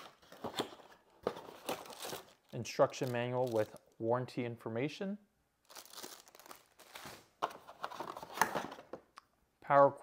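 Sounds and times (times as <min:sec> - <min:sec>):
plastic bag crinkling: 0:01.6 - 0:03.9, 0:05.7 - 0:07.3.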